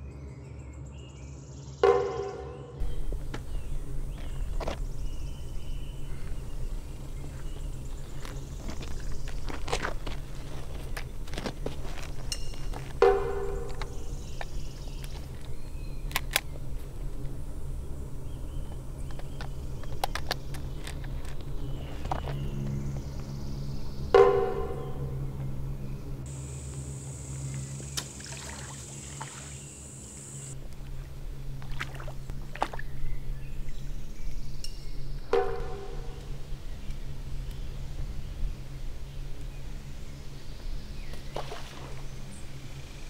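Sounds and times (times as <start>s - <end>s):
low sustained drone: 0.0s - 43.0s
sharp hits: 1.8s - 3.2s
scattered clicks: 16.1s - 16.5s.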